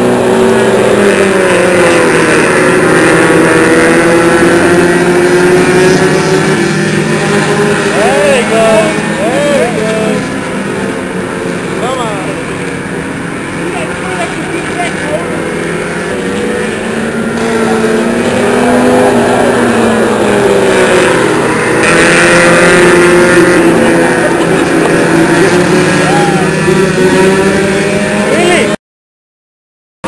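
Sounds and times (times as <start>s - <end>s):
race car engines on oval track: 0.0s - 28.8s.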